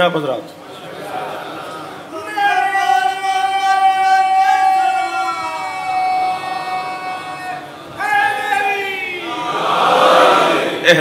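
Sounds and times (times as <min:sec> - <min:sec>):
congregation chanting: 0:00.8 - 0:11.0.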